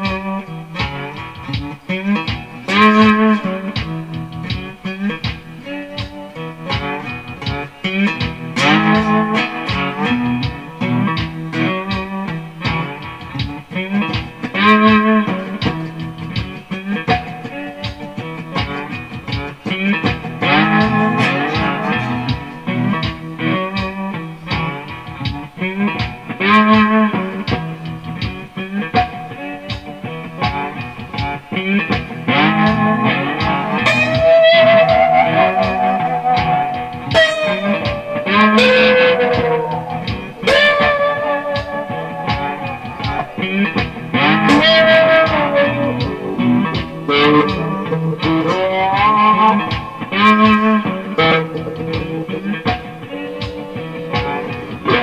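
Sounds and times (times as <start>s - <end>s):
slide guitar blues riff: 0.0s - 55.0s.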